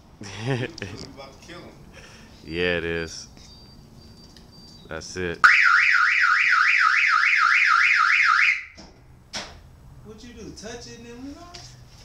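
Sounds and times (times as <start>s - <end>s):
car alarm siren: 5.4s - 8.8s.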